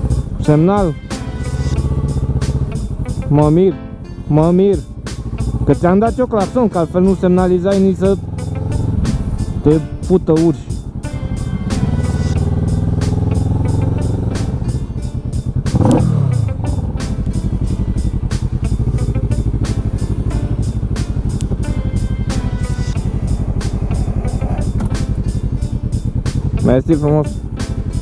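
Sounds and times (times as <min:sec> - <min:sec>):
background music with beat: 0:00.0 - 0:28.0
motorcycle engine revving: 0:00.0 - 0:28.0.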